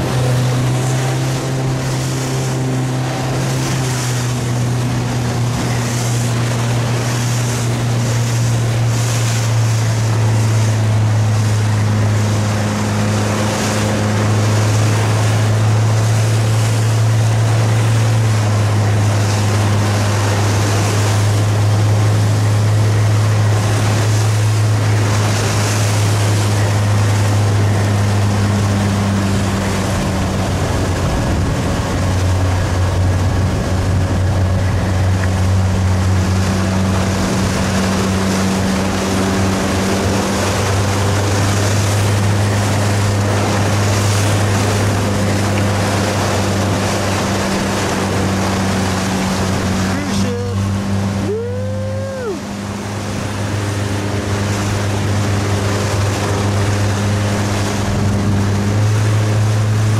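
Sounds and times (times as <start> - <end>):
motorboat engine droning: 0.0 - 59.9
water splashing against hull: 0.0 - 59.9
wind: 0.0 - 59.9.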